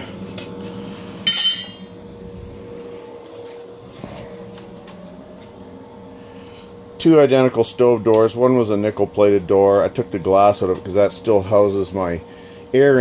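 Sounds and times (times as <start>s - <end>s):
exhaust fan humming with whine: 0.0s - 13.0s
metallic clank with ringing: 1.2s - 2.1s.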